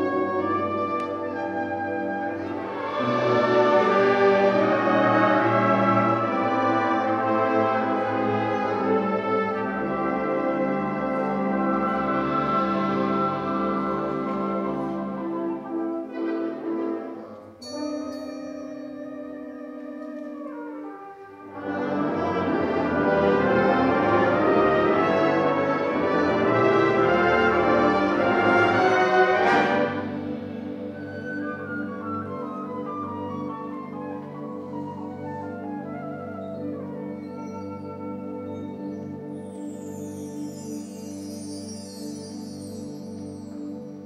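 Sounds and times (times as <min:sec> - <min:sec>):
high ringing stroke: 0:17.6 - 0:19.4.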